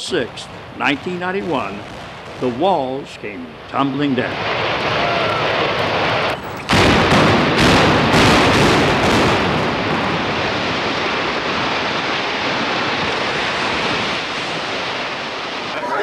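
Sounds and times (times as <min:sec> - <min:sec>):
building collapsing rush: 0:00.0 - 0:16.0
sharp explosive blasts: 0:00.1 - 0:16.0.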